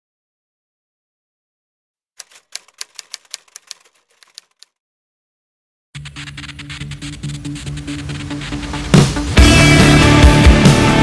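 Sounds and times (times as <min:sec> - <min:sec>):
typewriter keystrokes: 0:02.2 - 0:04.8.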